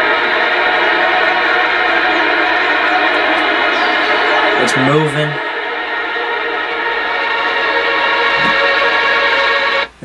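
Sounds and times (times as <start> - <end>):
eerie electric guitar drone: 0.0 - 9.9.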